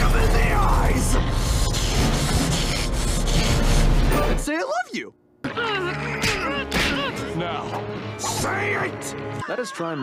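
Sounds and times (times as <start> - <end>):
loud rasping noise: 0.0 - 4.1.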